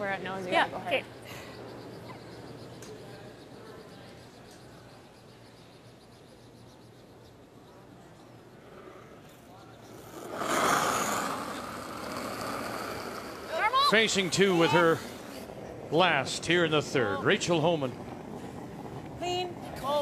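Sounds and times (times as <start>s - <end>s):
low arena hush: 6.4s - 20.0s
curling stone gliding on ice: 8.6s - 16.0s.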